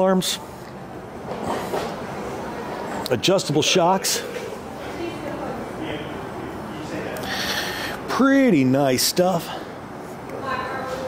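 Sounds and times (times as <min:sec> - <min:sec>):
workshop rumble and hiss: 0:00.0 - 0:11.0.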